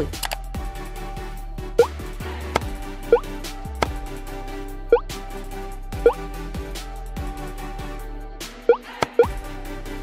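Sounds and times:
looping background music: 0.0 - 10.0.

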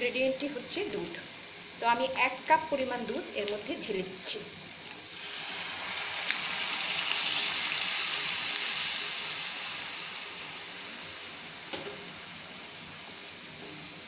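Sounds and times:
milk sizzling in hot pan: 0.0 - 14.0
milk bubbling boil: 3.4 - 12.6.

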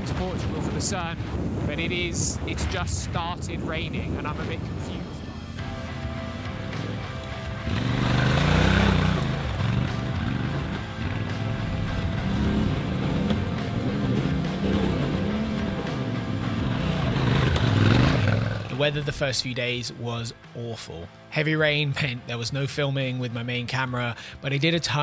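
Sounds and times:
music: 0.0 - 25.0
motorcycle engine revving: 5.6 - 18.9.

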